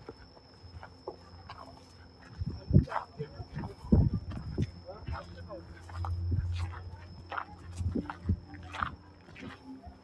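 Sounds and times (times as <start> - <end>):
low steady hum: 0.0 - 10.0
indistinct voices: 1.1 - 10.0.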